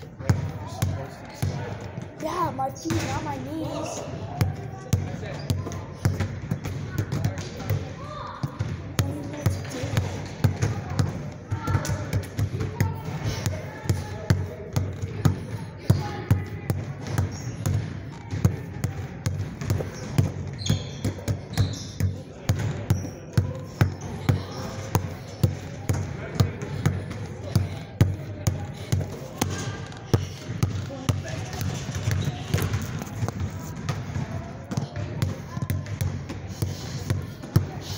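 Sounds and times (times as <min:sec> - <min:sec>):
basketball bouncing: 0:02.8 - 0:03.6, 0:04.4 - 0:37.8.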